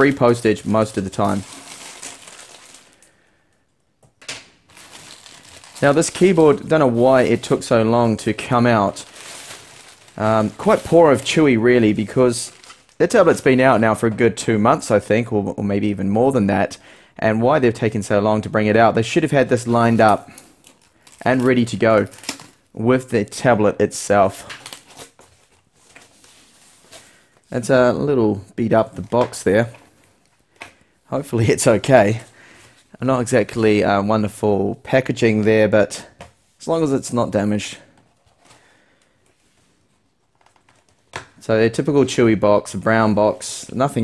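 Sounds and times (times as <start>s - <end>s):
foam packing wrap rustling: 0.0s - 3.1s, 4.7s - 13.8s, 19.6s - 22.7s
plastic bag crinkling: 0.0s - 3.2s, 4.7s - 13.7s, 19.6s - 22.8s.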